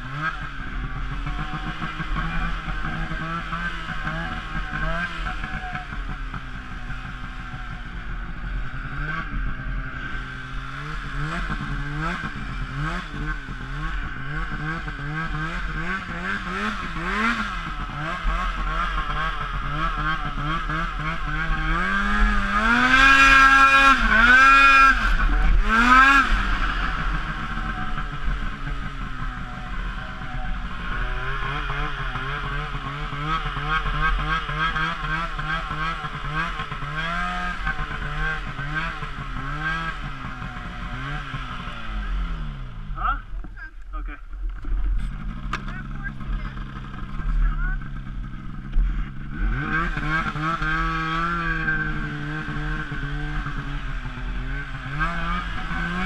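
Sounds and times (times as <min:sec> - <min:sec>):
snowmobile engine revving: 0:00.0 - 0:56.0.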